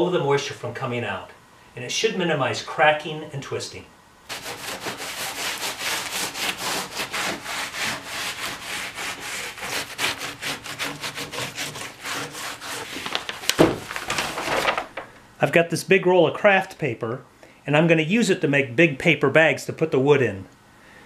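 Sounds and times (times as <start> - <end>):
brush scrubbing wood: 4.3 - 13.4
paper roll rustling: 9.6 - 15.2.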